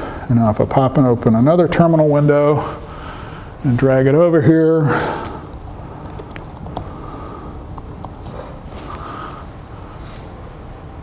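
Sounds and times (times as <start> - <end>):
background hiss and hum: 0.0 - 11.0
keyboard key clicks: 5.5 - 6.9.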